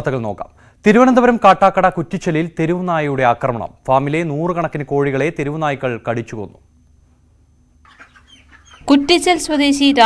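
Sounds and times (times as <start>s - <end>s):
low steady hum: 0.0s - 10.0s
chickens cheeping: 7.8s - 9.0s.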